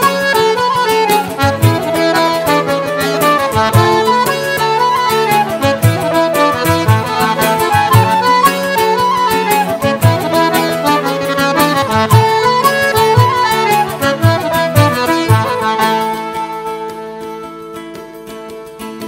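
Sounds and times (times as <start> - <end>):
accordion melody: 0.0 - 19.0
acoustic guitar chords: 0.0 - 19.0
flute melody: 0.0 - 19.0.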